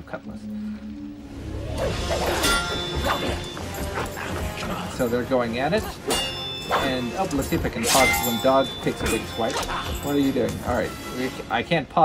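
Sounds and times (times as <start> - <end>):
orchestral score: 0.0 - 11.9.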